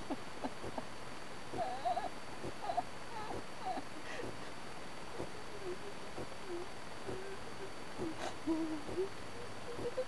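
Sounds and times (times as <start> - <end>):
woman moaning softly: 1.5 - 4.6, 5.2 - 10.0.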